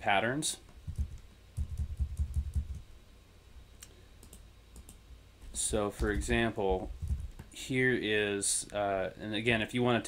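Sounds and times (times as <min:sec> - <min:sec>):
computer keyboard typing: 0:00.9 - 0:02.8, 0:04.2 - 0:05.0, 0:07.0 - 0:07.5.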